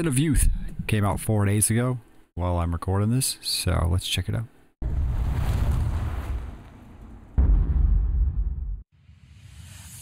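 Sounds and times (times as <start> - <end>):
deep booming impacts: 4.8 - 8.9.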